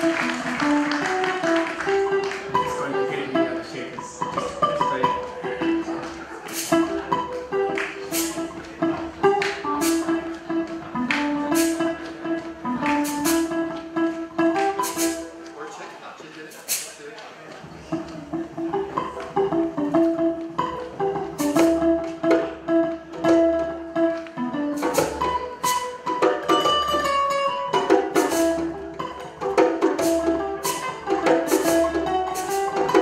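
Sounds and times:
hand drum strokes and slaps: 0.0 - 15.6, 16.5 - 33.0
plucked acoustic guitar: 0.0 - 15.7, 17.5 - 33.0.

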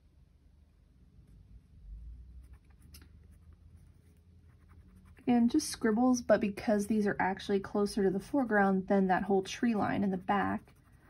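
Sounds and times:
pencil scratching on paper: 2.4 - 5.5, 9.6 - 11.0.

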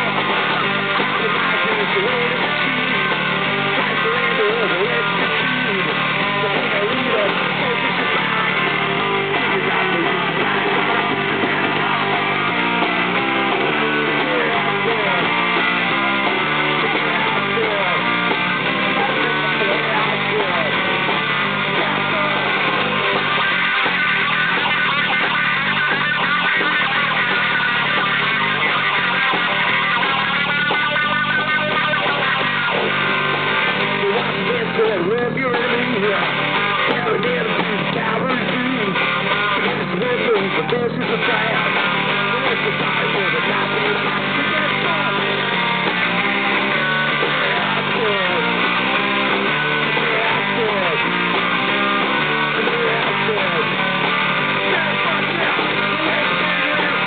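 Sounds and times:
punk rock band playing live: 0.0 - 57.0.

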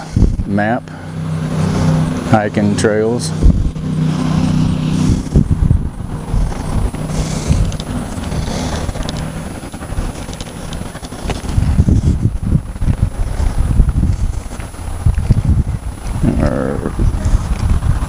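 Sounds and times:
low rumbling: 0.0 - 18.0
vehicle engine hum: 0.0 - 18.0.

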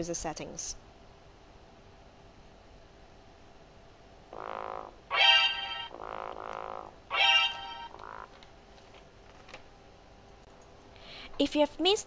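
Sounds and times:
electronic two-note alarm tone: 4.4 - 8.2.

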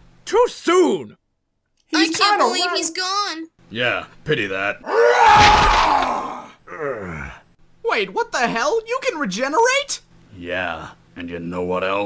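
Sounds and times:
cartoon character groaning yell: 4.9 - 7.4.

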